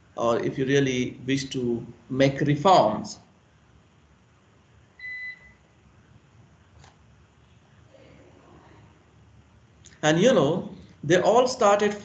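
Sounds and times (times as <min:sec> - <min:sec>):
faint room hush: 0:03.2 - 0:11.2
short electronic beep: 0:05.0 - 0:05.6.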